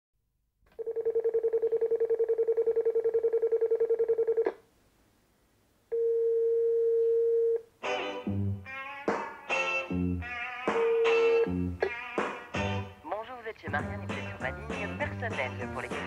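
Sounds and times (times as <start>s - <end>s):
electronic telephone ringer trilling: 0.8s - 4.5s.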